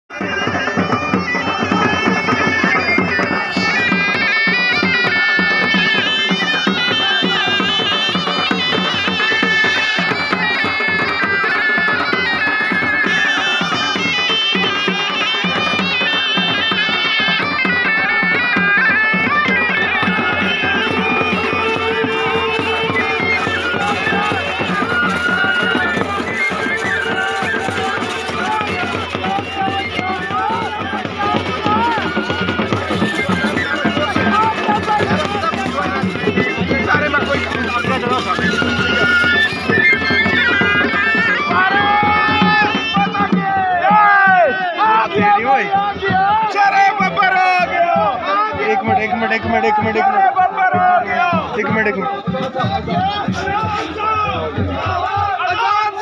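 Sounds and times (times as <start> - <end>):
crowd noise: 0.0 - 56.0
wavering wind instrument melody: 0.1 - 56.0.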